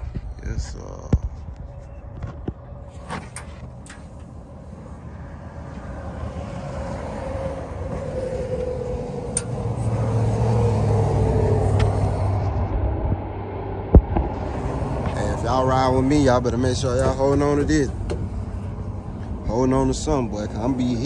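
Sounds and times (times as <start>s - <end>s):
motor vehicle rumble: 0.0s - 21.0s.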